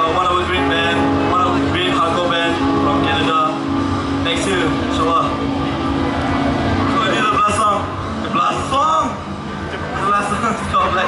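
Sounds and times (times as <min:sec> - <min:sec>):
amplifier hum and noise: 0:00.0 - 0:11.0.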